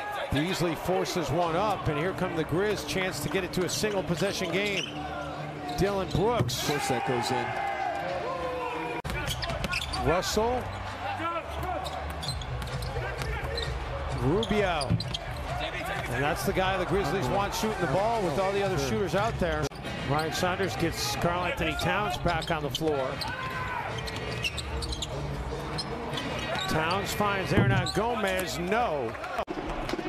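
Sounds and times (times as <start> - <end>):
sneakers squeaking: 3.8 - 6.5, 9.0 - 16.1, 22.1 - 28.4.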